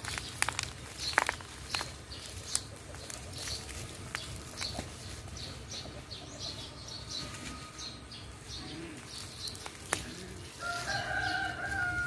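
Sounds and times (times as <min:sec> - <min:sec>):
small birds chirping: 0:00.0 - 0:12.0
rooster crowing: 0:10.5 - 0:12.0.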